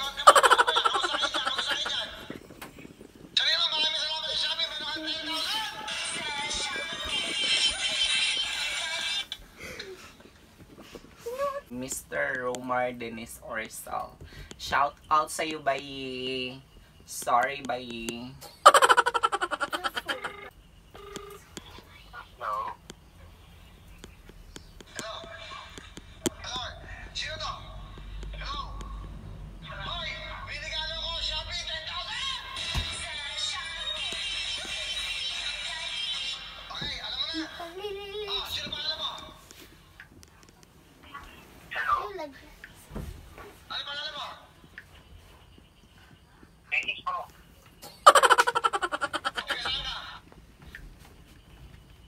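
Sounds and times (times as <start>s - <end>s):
people laughing hard: 0.2s - 2.3s, 18.6s - 20.3s, 48.0s - 49.8s
mobile phone beeps: 20.0s - 21.8s.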